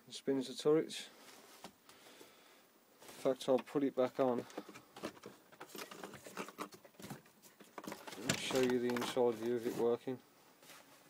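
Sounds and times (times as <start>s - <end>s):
cardboard taps and rustles: 4.3s - 9.3s.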